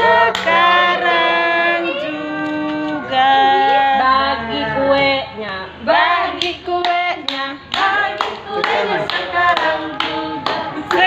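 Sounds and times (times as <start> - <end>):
small group singing a celebration song: 0.0 - 11.0
people clapping in time: 0.2 - 0.6, 6.4 - 11.0.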